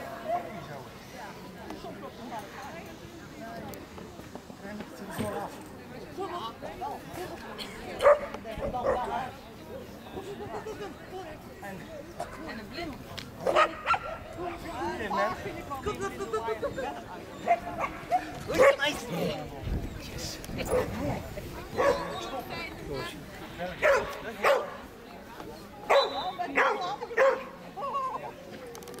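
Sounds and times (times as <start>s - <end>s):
people talking: 0.0s - 29.0s
dog barking: 13.4s - 14.2s, 21.8s - 22.2s, 23.8s - 24.7s, 25.9s - 27.5s.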